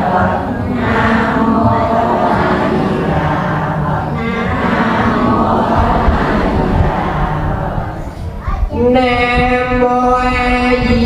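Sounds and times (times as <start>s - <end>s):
crowd chanting prayers in unison: 0.0s - 11.0s.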